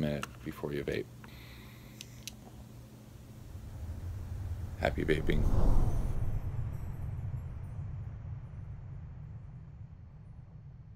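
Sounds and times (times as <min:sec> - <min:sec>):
low steady rumble: 0:00.1 - 0:10.9.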